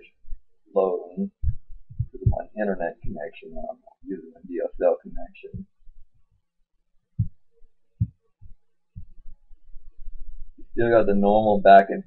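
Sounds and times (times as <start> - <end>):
faint hum: 0.0 - 12.0
dull low thumps: 1.2 - 6.4, 7.2 - 11.8.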